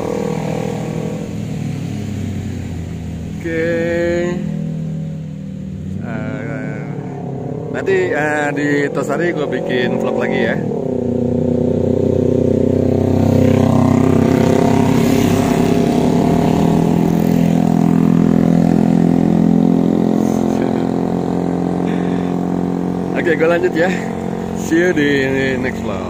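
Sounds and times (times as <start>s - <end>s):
motorcycles passing on wet road: 0.0s - 26.0s.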